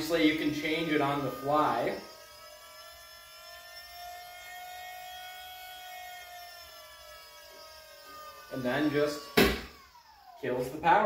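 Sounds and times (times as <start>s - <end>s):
power steering pump electric whine: 0.0s - 11.0s.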